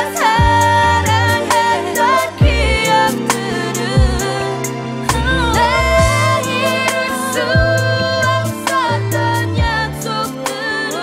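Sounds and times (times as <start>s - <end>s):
hi-hats: 0.0s - 11.0s
woman singing: 0.0s - 11.0s
deep kick drum: 2.4s - 2.7s, 4.0s - 4.2s, 5.1s - 6.4s.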